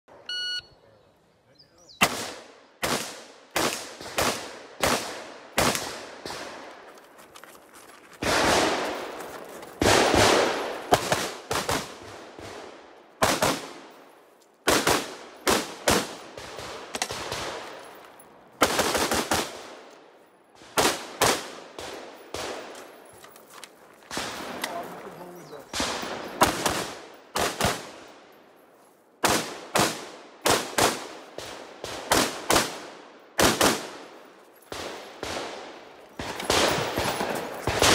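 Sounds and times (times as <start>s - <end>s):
shot timer beep: 0.2s - 0.8s.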